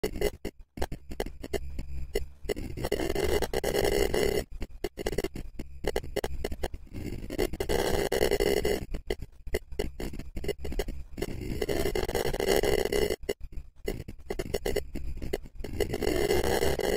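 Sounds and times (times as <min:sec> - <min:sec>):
choppy stutter effect: 0:00.0 - 0:16.9.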